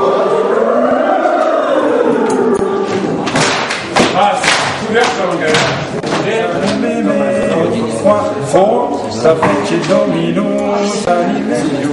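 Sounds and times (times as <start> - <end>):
group of voices singing: 0.0 - 3.4, 6.0 - 11.9.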